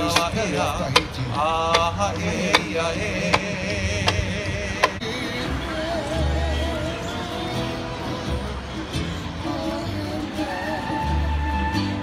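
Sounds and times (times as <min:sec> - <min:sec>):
plucked upright bass: 0:00.0 - 0:10.4
strummed ukulele and guitar: 0:00.0 - 0:12.0.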